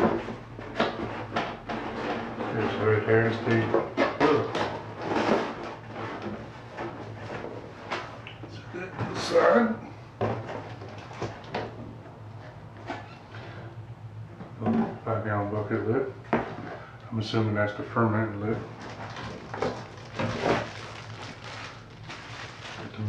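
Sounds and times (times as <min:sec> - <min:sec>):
cardboard and plastic rustling: 0:00.0 - 0:08.2, 0:10.2 - 0:13.6, 0:18.5 - 0:23.0.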